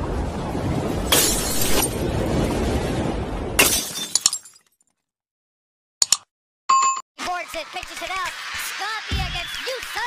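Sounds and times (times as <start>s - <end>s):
glass shattering: 1.1s - 2.0s, 3.6s - 4.8s.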